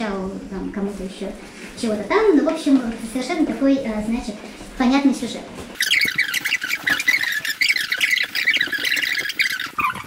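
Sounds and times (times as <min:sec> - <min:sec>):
birds chirping: 0:05.8 - 0:10.0.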